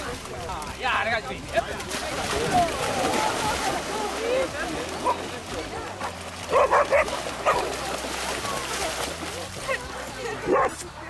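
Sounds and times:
dog barking: 6.5 - 7.7, 10.4 - 10.8.

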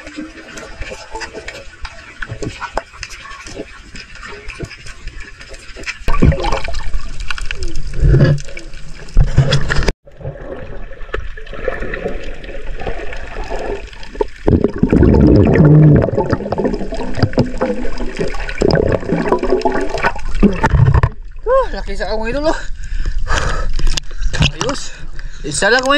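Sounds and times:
water rushing underwater: 0.0 - 21.5.

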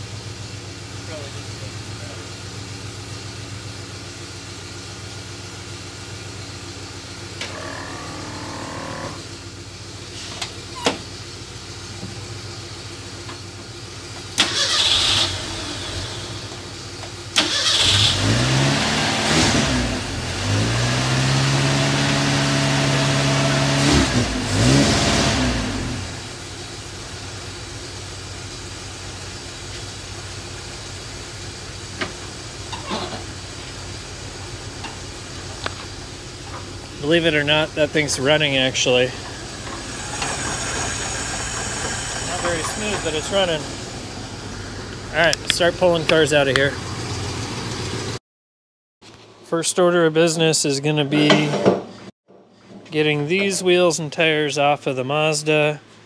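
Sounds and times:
car engine idling and revving: 0.0 - 48.2.

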